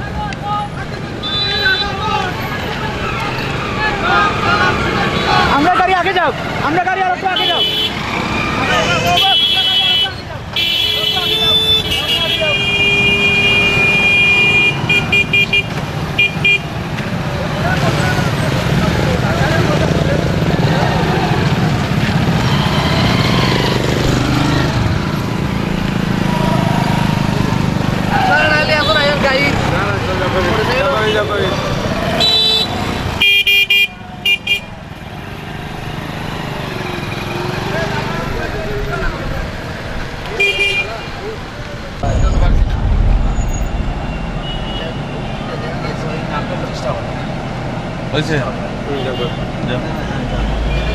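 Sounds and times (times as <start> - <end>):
voices: 0.0 - 13.2
passing vehicles: 0.0 - 50.9.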